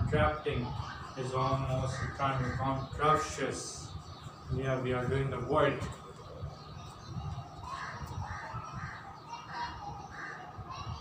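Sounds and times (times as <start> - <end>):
bird harsh calls: 0.0 - 11.0.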